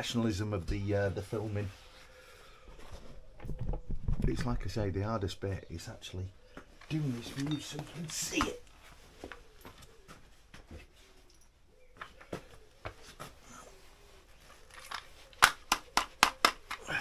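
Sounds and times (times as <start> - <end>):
hand tools knocking and clicking: 14.8 - 16.9.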